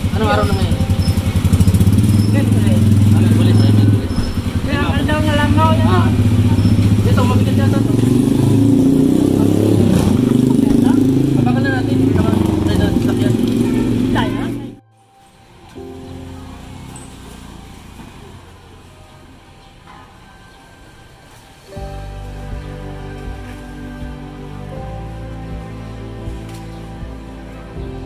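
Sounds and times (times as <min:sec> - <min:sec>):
motorcycle engine running: 0:00.0 - 0:14.8
people talking: 0:00.0 - 0:14.8.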